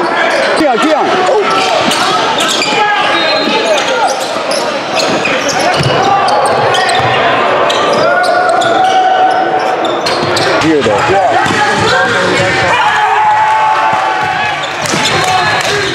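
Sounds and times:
voices of players and spectators: 0.0 - 15.9.

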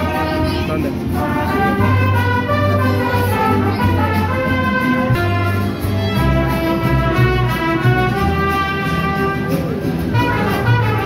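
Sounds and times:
bass line: 0.0 - 11.0
strummed guitars: 0.0 - 11.0
trumpets: 0.0 - 11.0
violins: 0.0 - 11.0.

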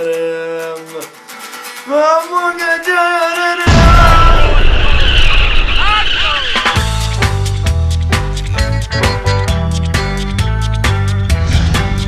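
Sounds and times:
music with steady beat: 0.0 - 3.8, 6.6 - 12.0.

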